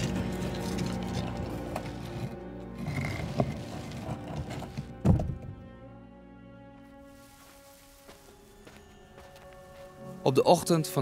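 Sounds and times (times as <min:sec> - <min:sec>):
heavy stone grinding and thudding: 0:00.0 - 0:05.6
sustained music with held notes: 0:00.0 - 0:11.0.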